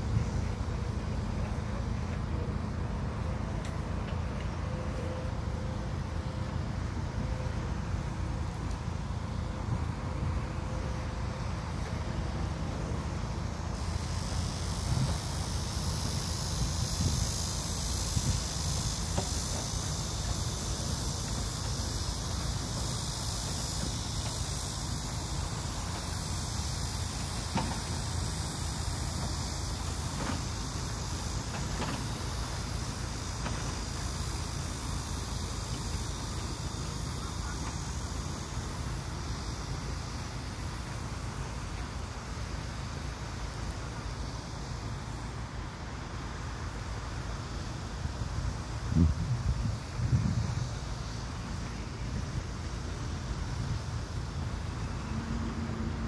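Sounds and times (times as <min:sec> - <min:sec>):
high-pitched hiss: 0:00.0 - 0:56.0
wind buffeting microphone: 0:48.8 - 0:51.0.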